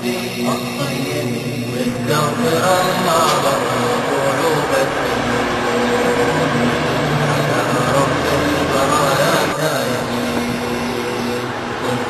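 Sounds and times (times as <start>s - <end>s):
man chanting unaccompanied: 0.0s - 12.0s.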